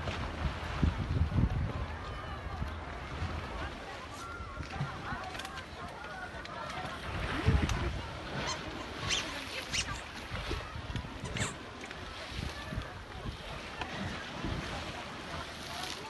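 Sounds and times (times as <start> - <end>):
wind gusting on microphone: 0.0 - 3.8, 6.9 - 15.6
faint distant voices: 0.0 - 16.0.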